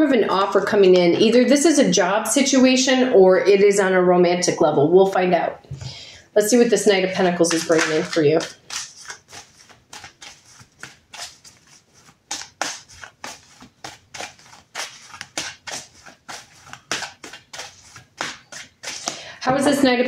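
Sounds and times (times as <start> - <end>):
cards being shuffled: 7.5 - 19.3.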